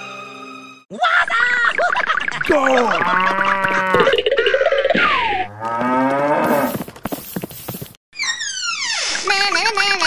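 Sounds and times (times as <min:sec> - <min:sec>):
cow mooing: 0:05.5 - 0:06.7.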